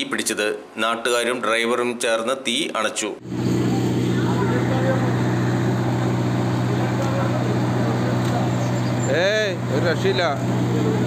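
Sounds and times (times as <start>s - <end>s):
diesel engine humming: 3.2s - 11.0s.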